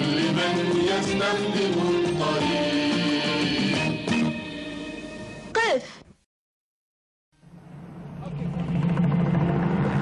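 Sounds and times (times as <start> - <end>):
engine-like drone: 7.4 - 10.0.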